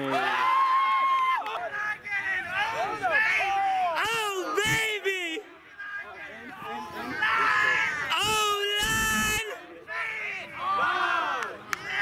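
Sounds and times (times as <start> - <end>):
players yelling and hollering: 0.0 - 12.0.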